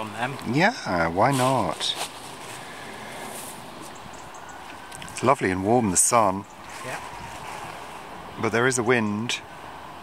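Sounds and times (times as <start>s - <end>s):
wind on microphone and plants: 0.0s - 10.0s.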